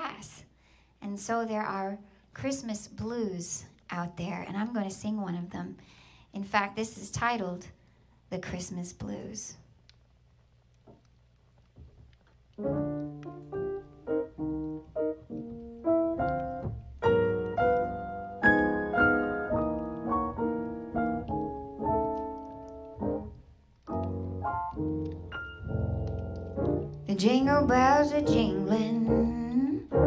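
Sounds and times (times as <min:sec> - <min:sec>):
grand piano chords: 0:11.8 - 0:30.0.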